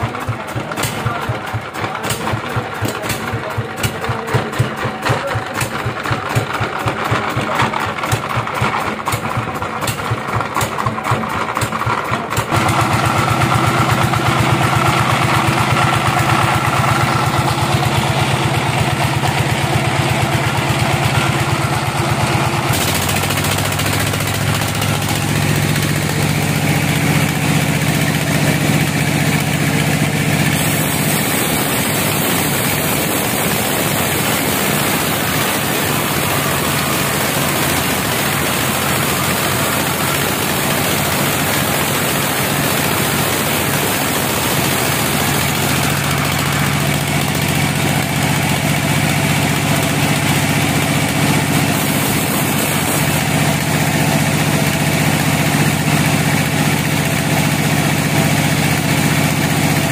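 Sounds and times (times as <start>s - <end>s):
diesel engine chugging: 0.0s - 59.9s
band saw mill drone: 12.6s - 59.9s.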